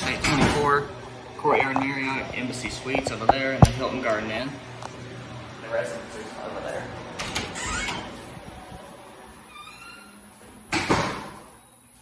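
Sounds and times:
door hinge creak: 7.2s - 8.2s, 9.5s - 10.2s.

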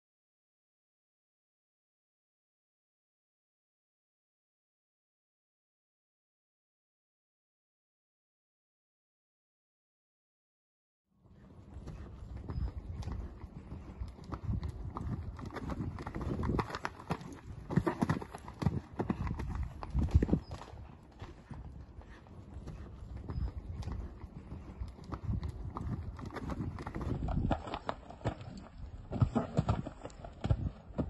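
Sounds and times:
horse hoofbeats on sand: 11.3s - 31.0s.

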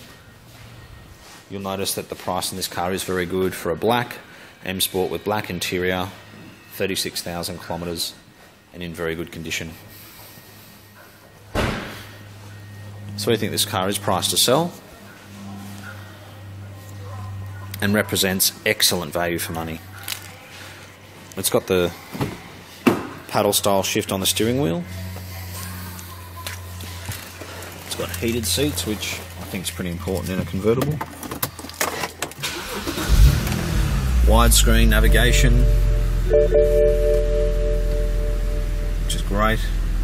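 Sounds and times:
door slamming shut: 11.5s - 12.0s
low rumble: 33.8s - 40.0s.

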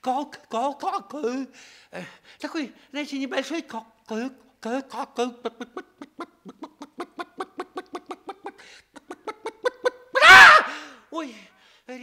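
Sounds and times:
man stammering syllables: 2.4s - 9.7s.

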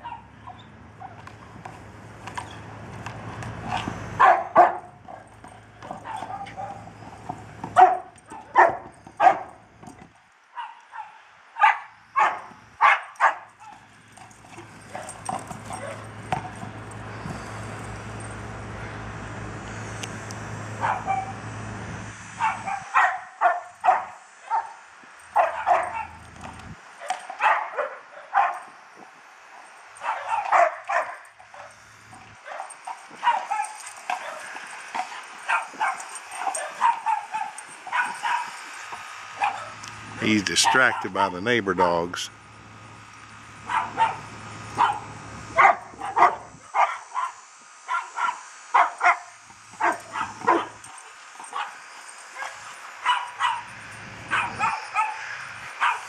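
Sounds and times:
dog barking sharply: 4.2s - 5.2s, 7.8s - 9.5s, 10.6s - 13.5s, 22.4s - 24.7s, 25.4s - 26.2s, 27.0s - 28.6s, 30.0s - 31.2s, 35.5s - 38.6s, 43.7s - 44.2s, 44.8s - 50.8s, 54.3s - 55.2s, 55.8s - 56.0s.

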